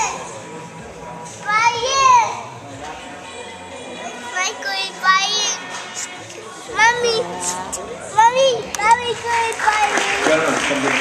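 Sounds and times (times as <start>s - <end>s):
low hall chatter: 0.0s - 11.0s.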